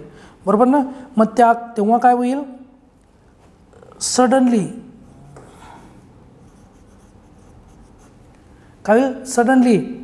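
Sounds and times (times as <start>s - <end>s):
pen scratching on paper: 6.4s - 8.3s.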